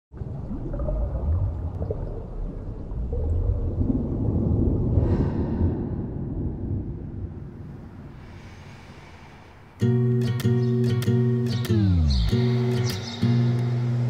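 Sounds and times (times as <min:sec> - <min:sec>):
low underwater wash: 0:00.1 - 0:09.9.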